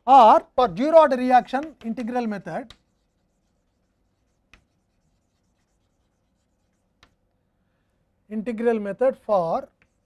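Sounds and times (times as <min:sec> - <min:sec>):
chalk on a blackboard: 0:01.3 - 0:07.2, 0:09.6 - 0:10.0
chalk taps: 0:01.3 - 0:07.3, 0:09.6 - 0:10.0.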